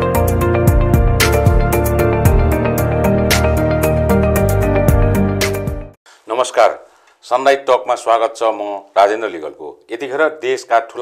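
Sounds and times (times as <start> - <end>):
instrumental theme music: 0.0 - 6.0.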